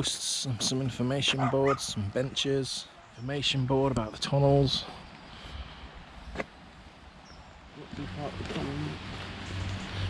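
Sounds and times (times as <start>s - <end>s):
man talking quietly: 0.0s - 5.0s, 7.7s - 9.2s.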